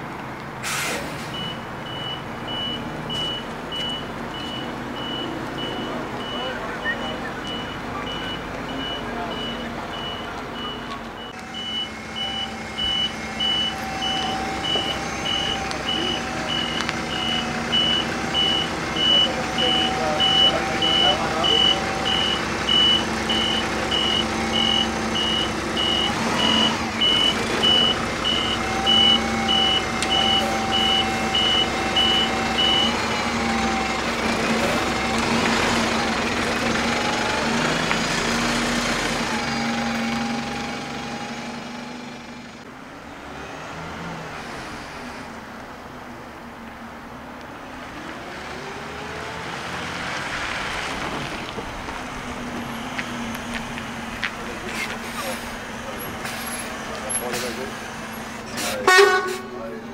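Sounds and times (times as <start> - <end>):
bus engine idling: 0.0 - 43.2, 50.3 - 59.9.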